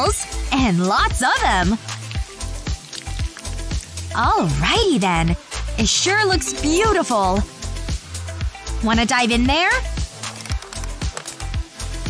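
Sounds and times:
background music with low beat: 0.0s - 12.0s
water running into bathtub: 1.5s - 4.8s.

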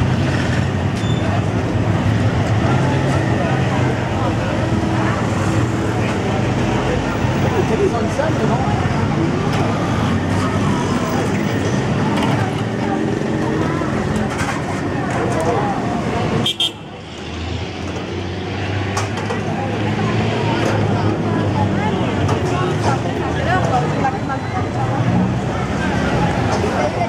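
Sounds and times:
car and motorbike traffic: 0.0s - 27.0s
people chattering: 0.0s - 27.0s.

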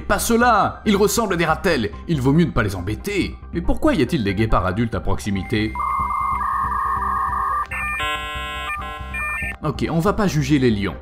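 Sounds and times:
pulsing electronic beep: 5.4s - 9.6s
buzzy synthesizer chord: 5.8s - 9.5s.

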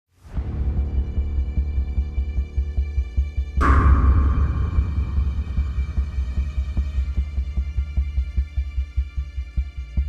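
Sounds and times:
throbbing bass pulse music: 0.3s - 10.0s.

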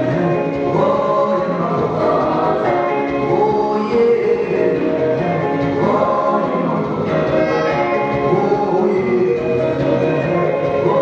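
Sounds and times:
song playing: 0.0s - 11.0s
voices singing held notes: 0.0s - 11.0s.

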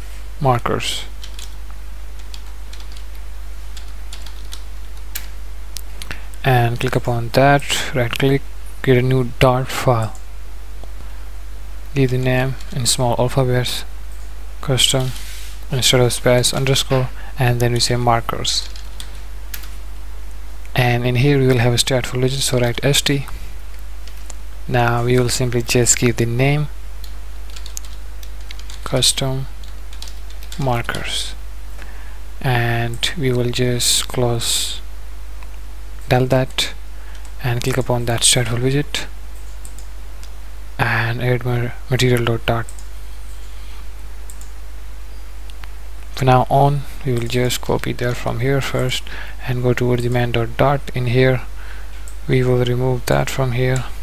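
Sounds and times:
steady low hum: 0.0s - 54.0s
computer keyboard keys clicking: 1.2s - 1.6s, 2.2s - 3.2s, 3.8s - 5.3s, 18.6s - 19.7s, 27.0s - 28.9s, 29.6s - 30.6s, 39.4s - 39.9s, 42.6s - 42.9s.

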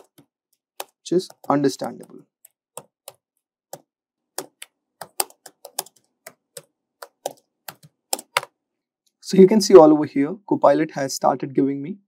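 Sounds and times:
computer keyboard keys clicking: 0.0s - 8.5s.

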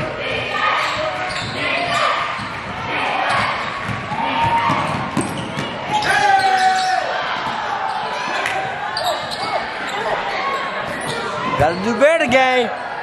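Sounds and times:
players and crowd shouting: 0.0s - 13.0s.

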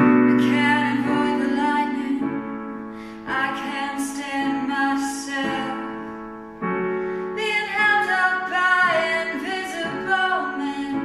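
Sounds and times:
woman singing: 0.0s - 6.3s, 7.3s - 11.0s
digital piano chords: 0.0s - 11.0s.

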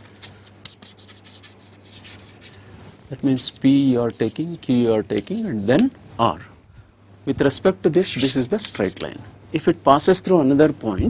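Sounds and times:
chalk scratching on chalkboard: 0.0s - 2.6s, 3.2s - 5.9s, 8.0s - 9.1s.

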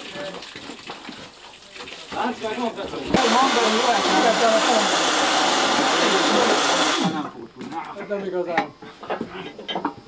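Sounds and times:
loud steady hissing: 2.1s - 9.2s.

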